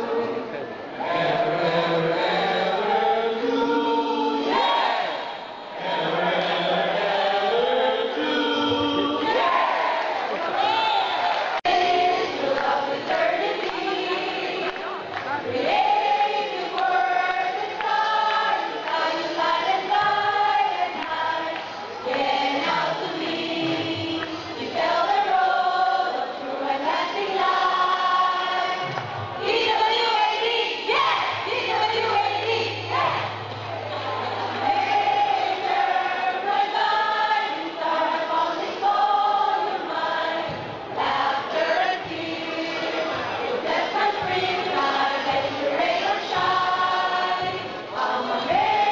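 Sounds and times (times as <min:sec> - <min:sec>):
choir singing a hymn: 0:00.9 - 0:48.9.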